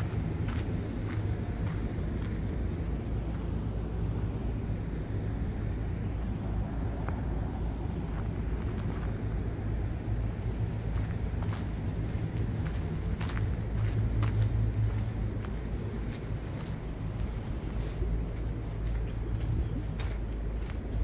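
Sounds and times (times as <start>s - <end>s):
city hum and rumble: 0.0s - 21.0s.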